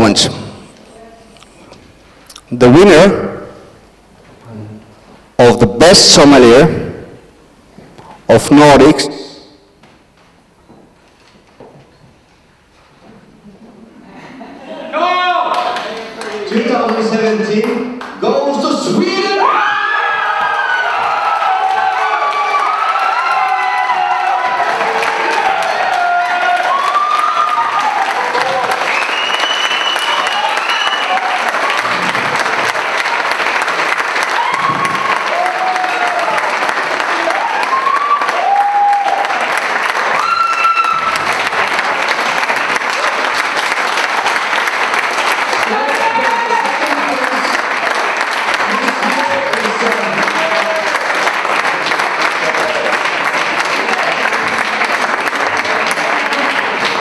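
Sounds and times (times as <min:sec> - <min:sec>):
audience applauding: 0:15.1 - 0:18.2, 0:19.2 - 0:57.0
shouts and whoops: 0:19.2 - 0:31.8, 0:34.2 - 0:39.4, 0:40.1 - 0:41.2, 0:45.7 - 0:47.4, 0:48.7 - 0:51.0.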